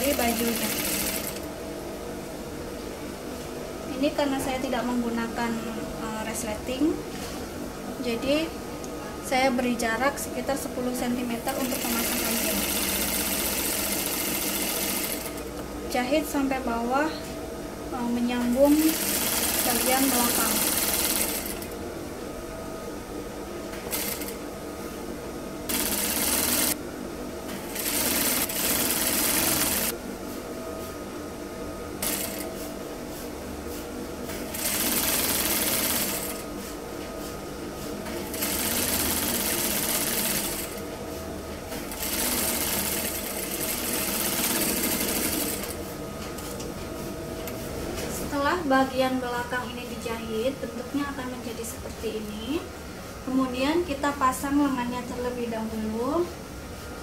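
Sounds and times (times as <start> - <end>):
sewing machine stitching: 0.0 - 1.5, 11.5 - 15.4, 18.7 - 21.7, 25.7 - 26.8, 27.7 - 29.9, 34.5 - 36.4, 38.4 - 40.8, 41.9 - 45.8
steady hum: 0.0 - 57.0.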